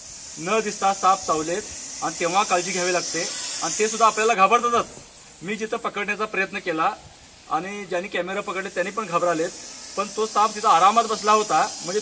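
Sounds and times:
snake hissing: 0.0 - 12.0.

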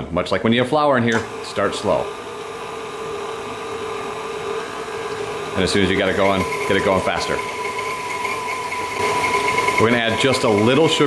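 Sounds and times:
stand mixer whirring: 1.1 - 11.0.

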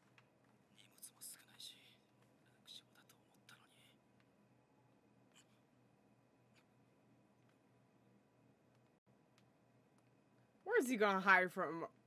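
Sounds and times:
person whispering: 0.7 - 4.0.

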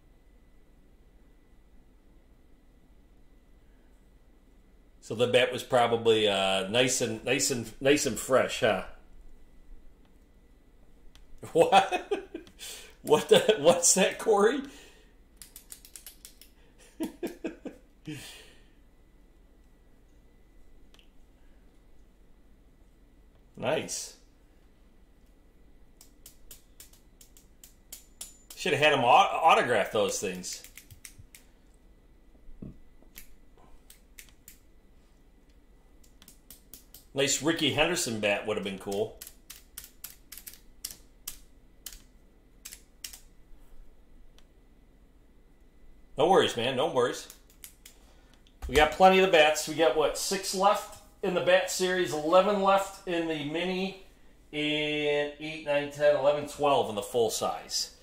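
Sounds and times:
typing on computer keyboard: 15.4 - 16.5, 30.6 - 31.2, 39.2 - 42.0, 42.6 - 43.2.

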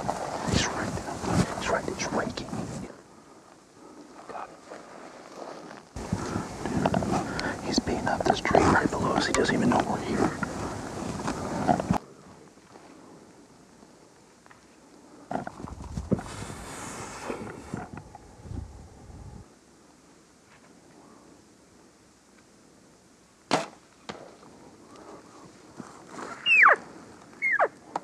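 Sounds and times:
bow shot snap: 23.5 - 24.2
elk calls sliding down: 26.2 - 27.8.

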